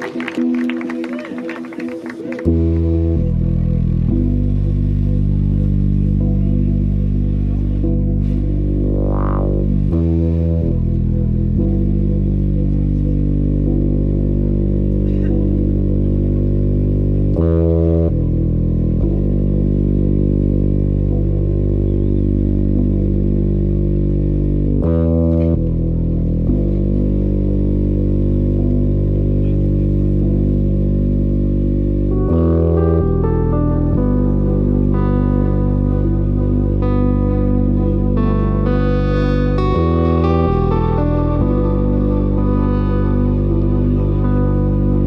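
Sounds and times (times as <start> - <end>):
synthesizer chord pads: 0.0 - 45.0
deep bass drone: 2.4 - 45.0.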